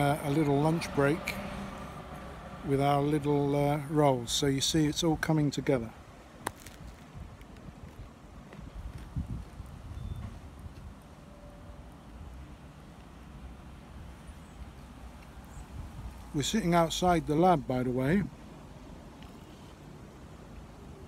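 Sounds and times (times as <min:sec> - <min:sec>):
faint low outdoor rumble: 0:00.0 - 0:21.0.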